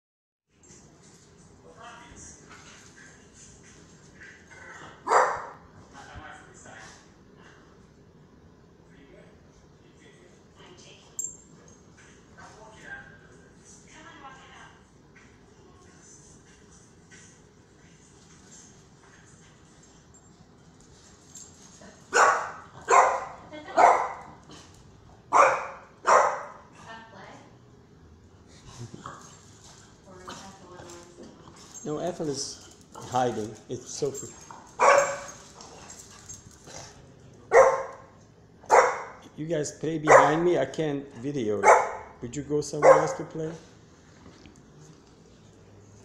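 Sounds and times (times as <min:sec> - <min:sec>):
dogs playing: 0:00.6 - 0:08.8, 0:09.4 - 0:39.4, 0:40.0 - 0:46.0
dog barking loudly: 0:05.0 - 0:05.6, 0:22.1 - 0:24.3, 0:25.3 - 0:26.6, 0:34.8 - 0:35.4, 0:37.5 - 0:39.2, 0:40.1 - 0:40.5, 0:41.6 - 0:42.2, 0:42.8 - 0:43.3
dog yipping: 0:34.8 - 0:35.4, 0:40.1 - 0:40.4.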